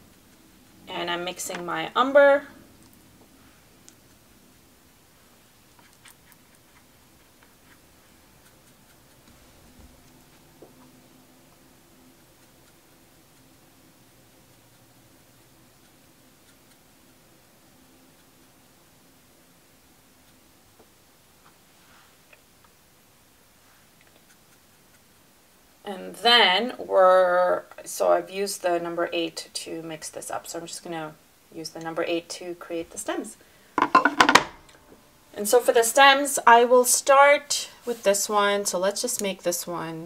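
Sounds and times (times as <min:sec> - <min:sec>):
woman speaking: 0:00.9 - 0:02.6, 0:25.9 - 0:33.4, 0:35.4 - 0:40.0
brush scratching on plastic palette: 0:05.6 - 0:10.5
small ticks: 0:05.7 - 0:10.9, 0:11.5 - 0:17.2, 0:24.0 - 0:25.2
brush tapping plastic palette: 0:33.8 - 0:34.5.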